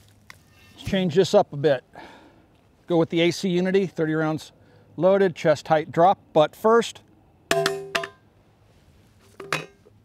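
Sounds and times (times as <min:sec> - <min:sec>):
magazine knocking on steel plate: 0:07.5 - 0:08.2
steel plate ringing: 0:07.5 - 0:08.2.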